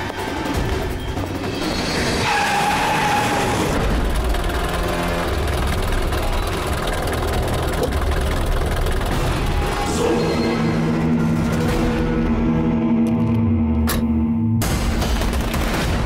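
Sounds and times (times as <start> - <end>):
suv engine running: 3.6 - 9.9.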